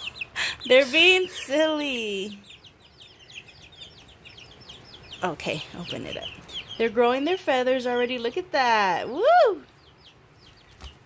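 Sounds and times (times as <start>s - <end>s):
baby chicks peeping: 0.0s - 11.0s.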